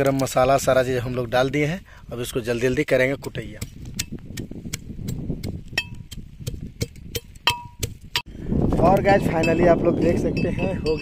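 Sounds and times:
pestle pounding in iron mortar: 3.5 - 8.3
man talking: 8.7 - 11.0.

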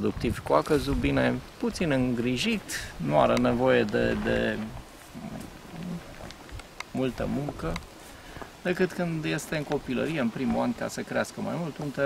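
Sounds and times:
faint low rumble: 0.0 - 10.9.

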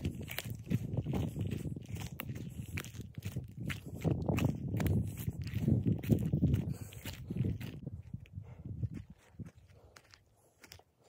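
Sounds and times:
footsteps on dry forest floor: 0.0 - 11.0.

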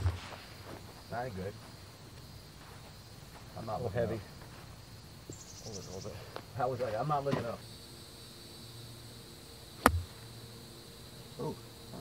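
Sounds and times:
club thudding through turf: 9.8 - 10.2
golf club striking ball: 9.8 - 10.2.

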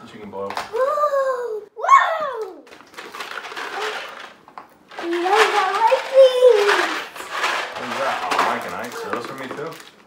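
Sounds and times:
plastic wrapping crinkling: 2.7 - 10.0.

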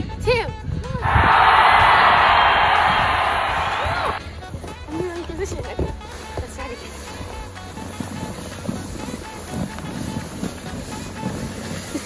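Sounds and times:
sled sliding over snow: 1.1 - 12.0.

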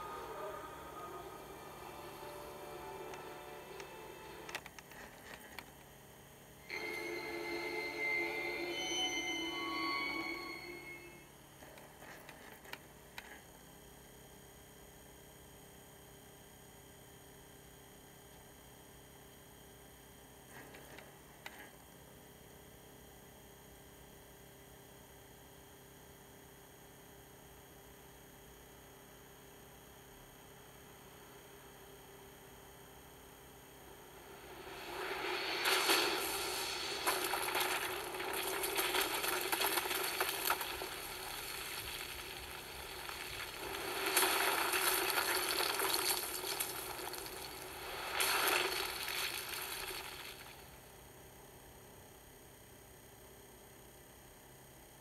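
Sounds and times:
film music: 0.0 - 4.7, 6.7 - 11.3
low hum: 0.0 - 13.5, 31.2 - 50.8
ringing sustained tones: 6.7 - 11.3.

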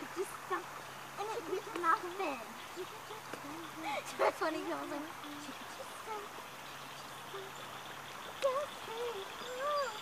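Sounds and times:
creek water rushing: 0.0 - 10.0
girl humming a tune: 7.3 - 7.6, 8.4 - 10.0.

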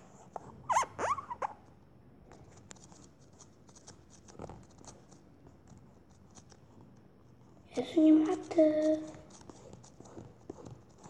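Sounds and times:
squeaky chirps: 0.7 - 1.6
stylus scratching on touchscreen: 7.9 - 11.0.

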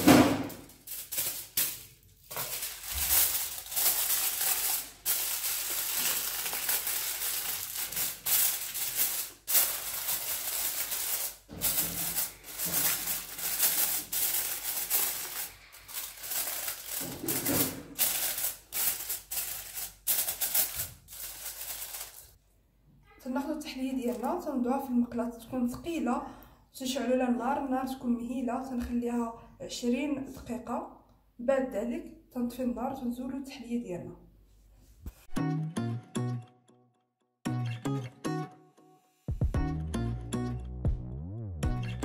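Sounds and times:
aluminium foil crinkling: 0.0 - 22.4, 23.9 - 24.6.

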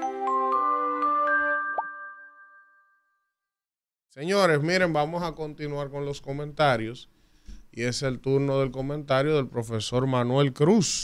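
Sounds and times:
chiming jingle notes: 0.0 - 3.3.

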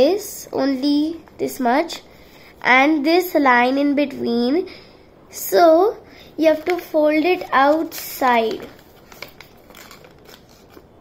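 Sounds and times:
paper crinkling being folded: 6.5 - 11.0.

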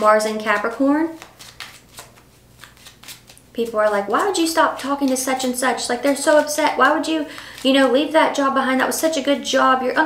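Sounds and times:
woman speaking: 0.0 - 1.2, 3.5 - 10.0
cards being shuffled: 0.0 - 8.0.

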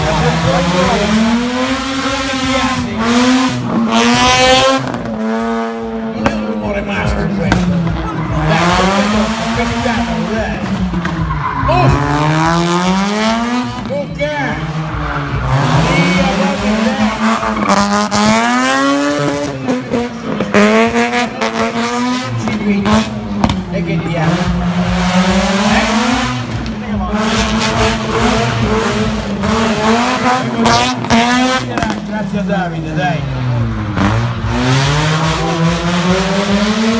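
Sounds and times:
car engine revving: 0.0 - 36.9
tyres squealing: 11.0 - 12.4.

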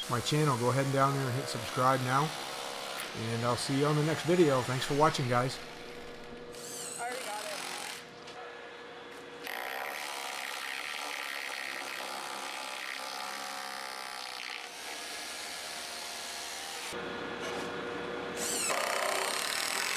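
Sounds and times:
hammer drill drilling into concrete: 18.4 - 19.9.

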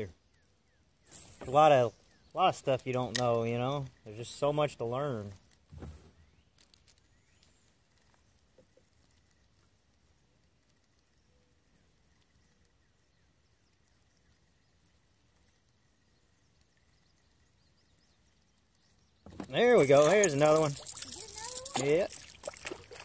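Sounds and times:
thin steady high tone: 19.5 - 22.6.

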